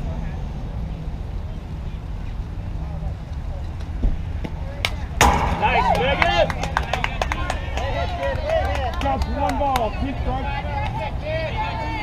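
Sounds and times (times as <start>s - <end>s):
players and fans shouting: 5.3s - 12.0s.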